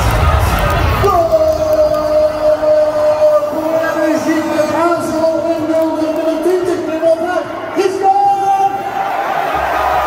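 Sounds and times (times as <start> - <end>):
stadium crowd: 0.0 - 10.0.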